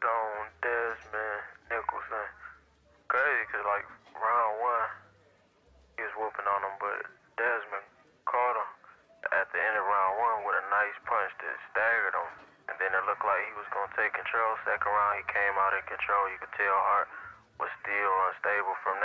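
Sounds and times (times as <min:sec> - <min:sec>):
man talking: 0:00.0 - 0:05.0, 0:06.0 - 0:19.0.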